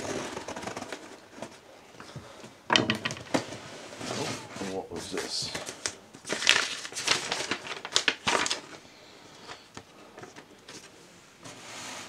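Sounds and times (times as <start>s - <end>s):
cardboard box rustling and scraping: 3.4s - 4.8s, 11.4s - 12.0s.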